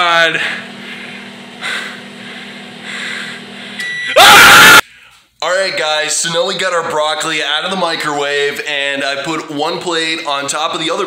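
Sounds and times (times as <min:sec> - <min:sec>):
microwave oven humming: 0:00.0 - 0:04.8
microwave beep: 0:03.8 - 0:04.2.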